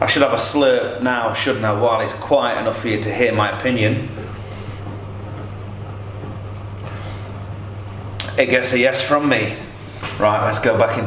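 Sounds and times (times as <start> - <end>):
steady low machinery hum: 0.0 - 11.0.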